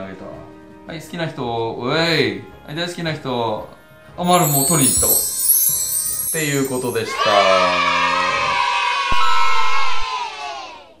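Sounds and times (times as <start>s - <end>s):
crowd cheering: 6.8s - 10.7s.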